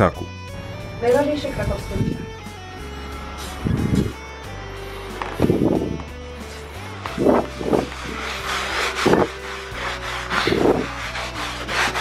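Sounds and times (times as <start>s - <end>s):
sponge scrubbing carpet: 6.4s - 12.0s.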